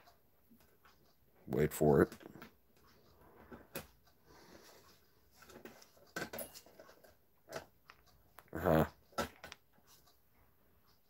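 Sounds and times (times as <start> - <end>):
small metallic clicks and rattles: 4.8 - 10.2.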